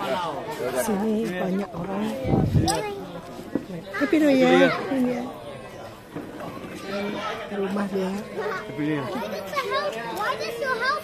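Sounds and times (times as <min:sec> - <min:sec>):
people chattering: 0:00.0 - 0:11.0
children's voices: 0:02.0 - 0:11.0.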